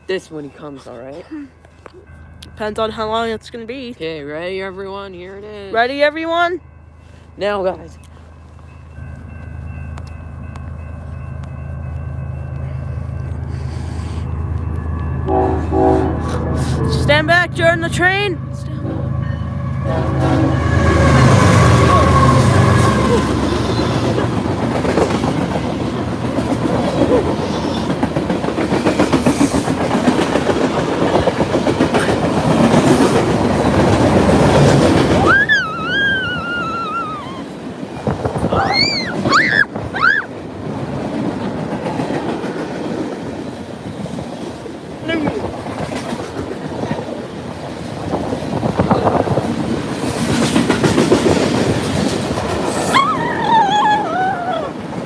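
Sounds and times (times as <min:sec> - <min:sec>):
train horn: 0:15.2 - 0:17.2, 0:18.1 - 0:23.8
high wavering squeals: 0:35.2 - 0:37.6, 0:38.5 - 0:40.3.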